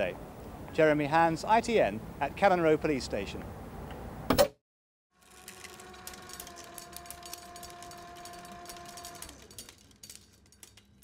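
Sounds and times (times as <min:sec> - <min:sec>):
tape machine motor hum: 0:05.2 - 0:09.7
reel clicking and rattling: 0:05.2 - 0:11.0.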